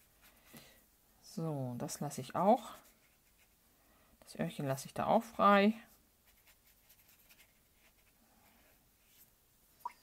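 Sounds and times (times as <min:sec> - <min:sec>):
brush scratching on paper: 0:02.6 - 0:03.6, 0:06.2 - 0:08.2.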